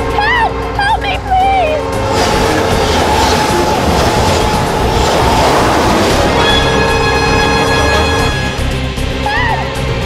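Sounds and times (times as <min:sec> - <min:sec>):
train wheels rumbling on rails: 0:00.2 - 0:08.8.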